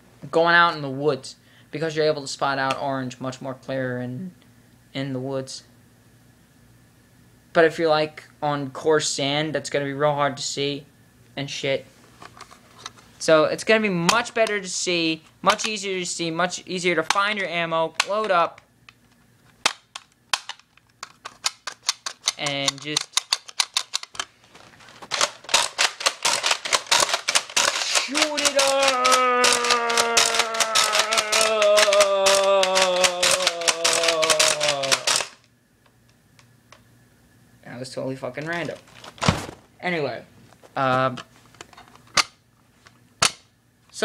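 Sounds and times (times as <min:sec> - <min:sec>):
plastic toy blaster clicks: 0:19.6 - 0:24.2, 0:25.1 - 0:35.5.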